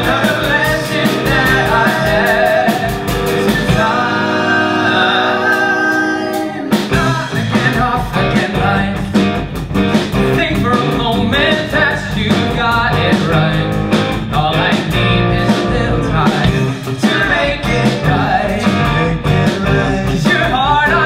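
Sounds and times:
men singing a show tune: 0.0s - 9.4s, 10.3s - 21.0s
live band playing: 0.0s - 21.0s.

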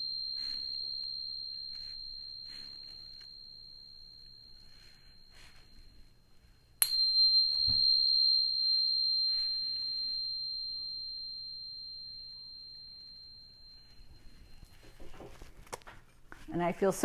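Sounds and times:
tuning fork ringing: 0.0s - 15.9s.

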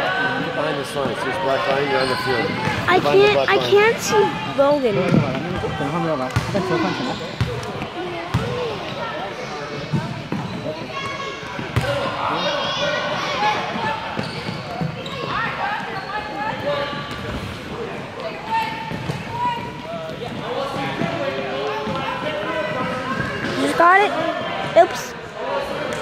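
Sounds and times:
children calling and chattering: 1.3s - 5.1s, 23.1s - 25.2s.

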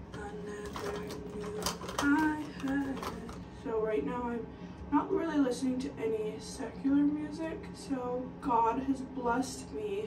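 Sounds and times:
makeup items clicking on counter: 0.1s - 3.4s.

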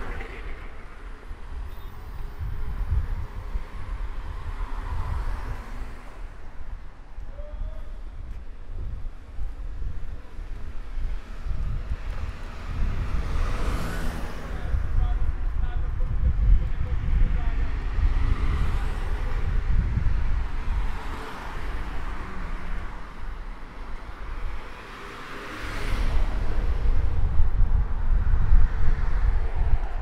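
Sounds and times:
wind buffeting microphone: 0.0s - 24.8s, 25.9s - 30.0s
vehicles passing on road: 0.0s - 30.0s.

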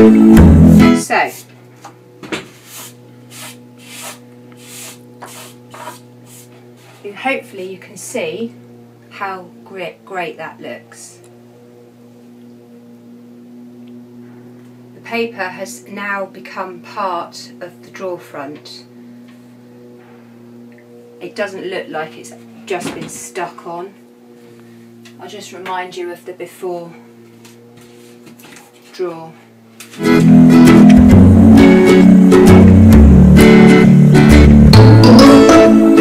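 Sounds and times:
low steady hum: 0.0s - 36.0s
short scratchy rubbing strokes: 2.4s - 7.2s, 27.6s - 29.0s.

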